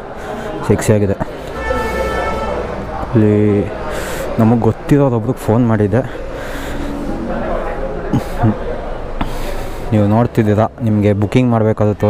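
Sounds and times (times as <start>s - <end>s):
faint indistinct voices: 0.0s - 12.0s
steady background noise: 0.0s - 12.0s.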